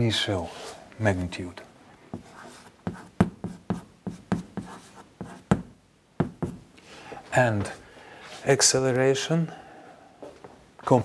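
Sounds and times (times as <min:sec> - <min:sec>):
chalk tapping on a blackboard: 0:02.1 - 0:06.6.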